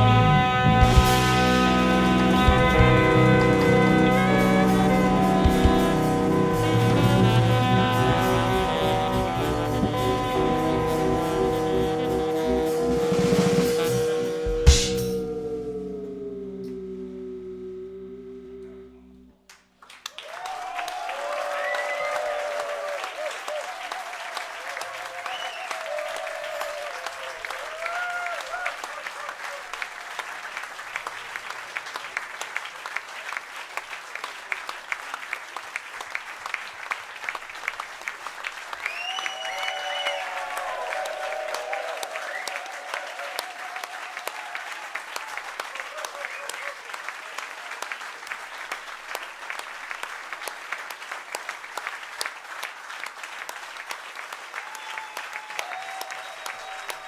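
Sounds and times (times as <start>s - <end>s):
audience applauding: 0.0s - 15.3s, 19.5s - 57.0s.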